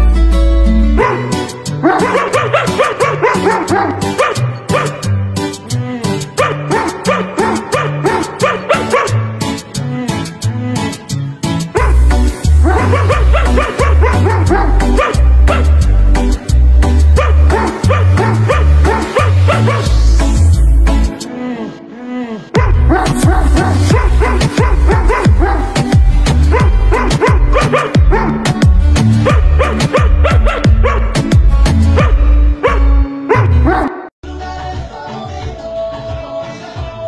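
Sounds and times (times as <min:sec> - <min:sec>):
pop song with heavy bass beat: 0:00.0 - 0:32.6, 0:33.5 - 0:37.0
dog howling: 0:12.7 - 0:15.6.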